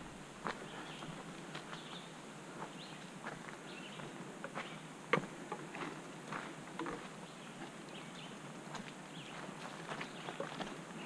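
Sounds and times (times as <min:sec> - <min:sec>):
footsteps on leafy dirt trail: 0:00.0 - 0:11.0.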